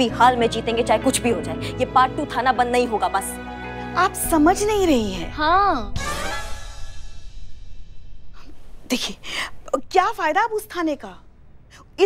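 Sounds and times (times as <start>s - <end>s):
woman speaking: 4.0s - 6.0s, 8.9s - 11.2s.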